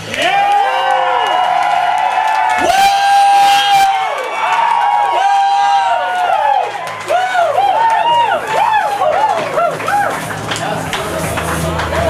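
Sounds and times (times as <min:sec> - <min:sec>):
audience cheering and whooping: 0:00.0 - 0:12.0
crowd noise: 0:00.0 - 0:12.0.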